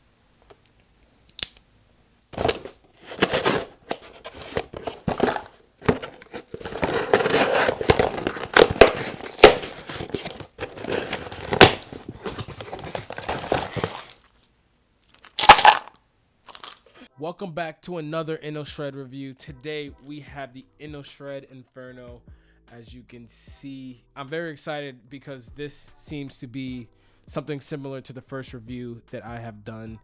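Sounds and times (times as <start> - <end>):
cardboard box rustling: 2.4 - 14.2
plastic bottle crunching: 2.4 - 14.3, 15.1 - 15.9, 16.5 - 16.8.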